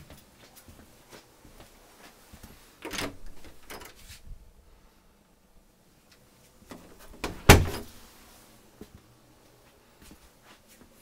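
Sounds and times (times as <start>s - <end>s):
door shutting thud: 6.7s - 8.0s
door knocks and rattles: 7.2s - 7.9s.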